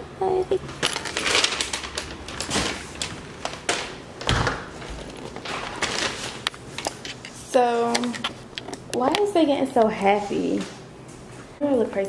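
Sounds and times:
paper bag rustling: 0.8s - 8.5s.

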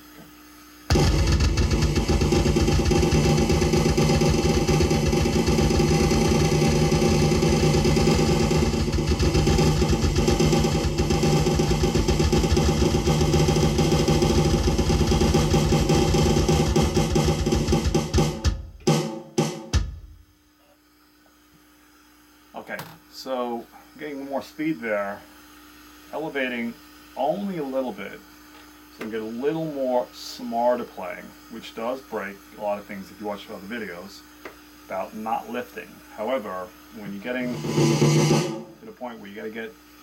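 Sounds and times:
electronic snare drum roll: 0.9s - 20.2s, 34.9s - 39.7s
bass drum: 0.9s - 20.3s, 37.2s - 38.8s.

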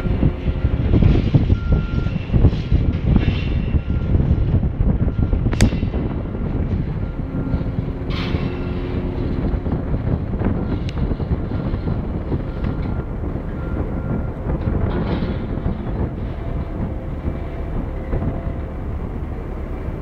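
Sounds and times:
boom hoist rumbling: 0.0s - 20.0s.

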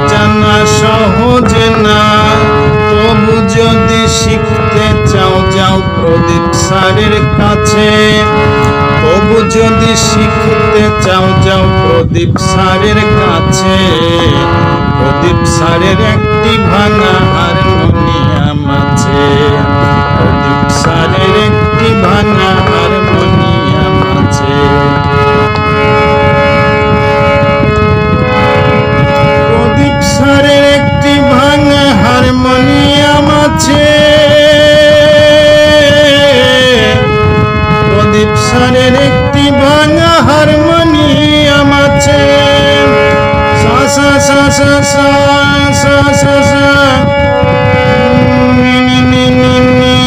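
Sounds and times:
harmonium reed chord: 0.0s - 50.0s
rough low noise: 0.0s - 50.0s.

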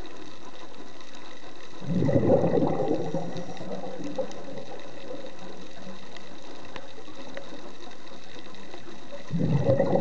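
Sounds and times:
faint clicks: 0.0s - 10.0s
underwater hiss: 0.0s - 10.0s.

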